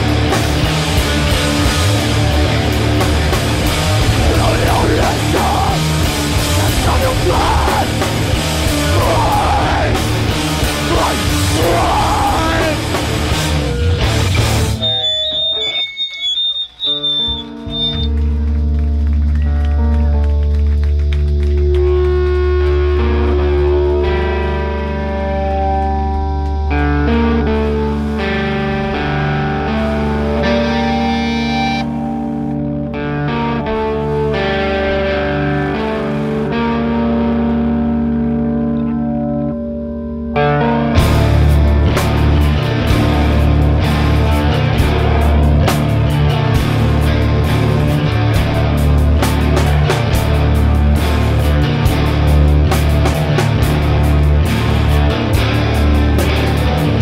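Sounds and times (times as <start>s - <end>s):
full band crashing: 0.0s - 32.1s, 40.4s - 57.0s
distorted guitar and bass notes: 0.0s - 57.0s
steady low drone: 0.0s - 57.0s
guitar feedback squeal: 11.4s - 18.5s, 22.8s - 41.4s.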